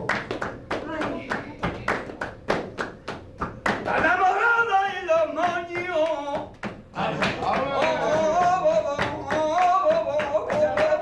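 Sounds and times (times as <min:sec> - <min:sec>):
people clapping in rhythm: 0:00.0 - 0:11.0.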